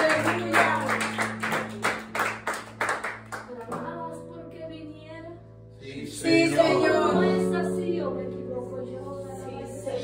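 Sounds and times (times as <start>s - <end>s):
rhythmic hand clapping: 0.0s - 4.0s
sustained worship music notes: 3.9s - 10.0s.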